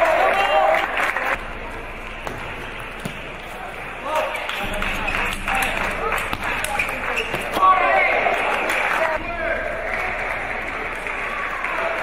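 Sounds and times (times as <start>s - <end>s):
murmur of hall: 0.0s - 12.0s
table tennis ball bouncing: 4.6s - 8.6s.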